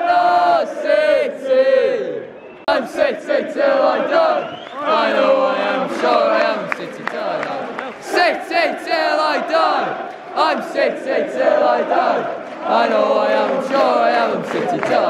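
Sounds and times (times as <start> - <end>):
crowd chanting: 0.0 - 15.0
handclaps: 6.0 - 8.1, 12.4 - 15.0.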